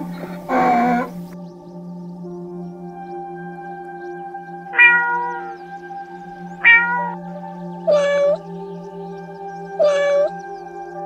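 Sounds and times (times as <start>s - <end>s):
soft ambient music: 0.0s - 11.0s
cat meowing: 4.8s - 5.5s, 6.6s - 7.2s, 7.9s - 8.4s, 9.8s - 10.3s.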